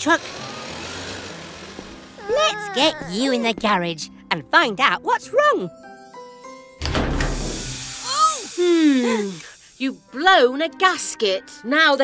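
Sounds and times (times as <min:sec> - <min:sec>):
cartoon engine hiss: 0:07.5 - 0:09.8.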